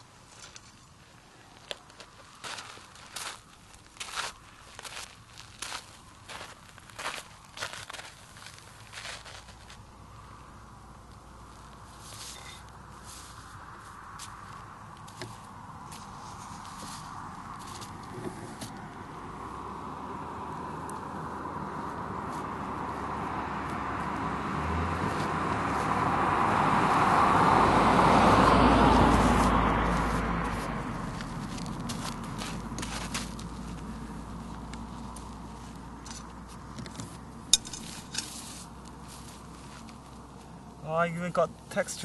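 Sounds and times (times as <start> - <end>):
vehicle passing by: 8.5 - 42.0.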